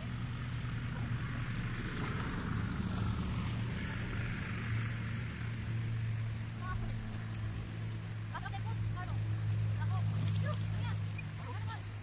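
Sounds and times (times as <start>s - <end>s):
low motor-like hum: 0.0s - 12.0s
river rushing: 0.1s - 12.0s.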